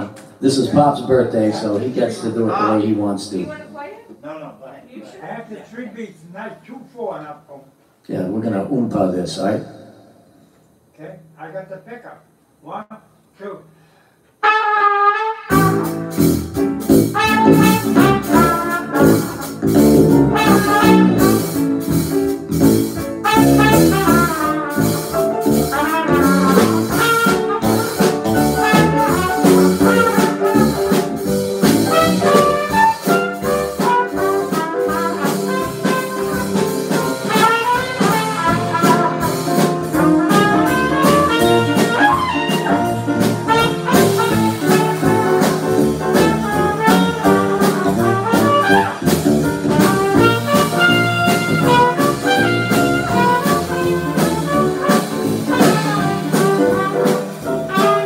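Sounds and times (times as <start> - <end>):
jazz band playing: 0.0 - 4.1, 14.4 - 58.0
trumpet melody: 14.4 - 58.0.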